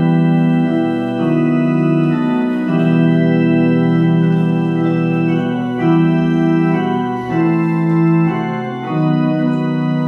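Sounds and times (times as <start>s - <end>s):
electronic keyboard organ chords: 0.0s - 10.0s.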